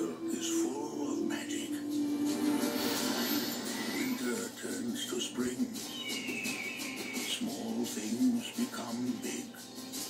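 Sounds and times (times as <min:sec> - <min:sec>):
film trailer music from television: 0:00.0 - 0:10.0.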